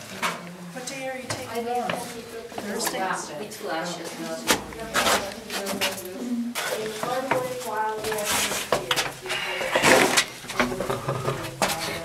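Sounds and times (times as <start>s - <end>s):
indistinct voices: 0.0s - 12.0s
shuffling footsteps on gritty floor: 0.8s - 12.0s.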